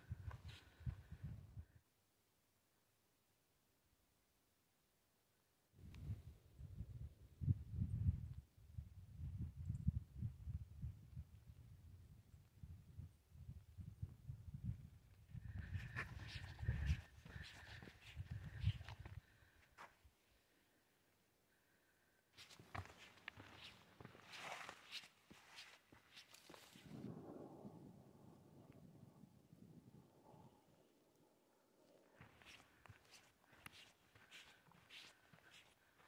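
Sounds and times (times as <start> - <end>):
wind buffeting microphone: 5.8 - 19.2, 26.8 - 30.5
footsteps crunching on a trail: 15.5 - 19.9, 22.4 - 26.9, 32.2 - 36.0.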